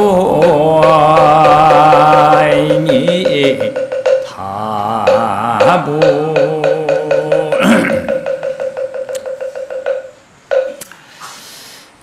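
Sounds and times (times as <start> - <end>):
wooden fish drum strokes: 0.0 - 10.8.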